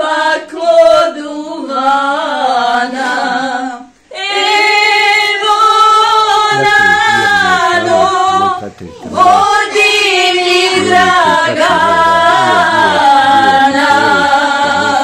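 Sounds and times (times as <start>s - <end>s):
women singing unaccompanied: 0.0s - 15.0s.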